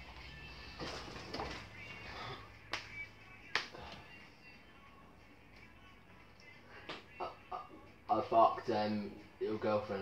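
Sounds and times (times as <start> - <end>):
sharp snaps: 2.6 - 3.8.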